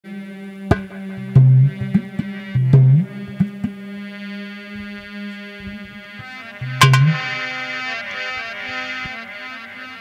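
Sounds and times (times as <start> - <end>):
electronic keyboard steady note: 0.1 - 10.0.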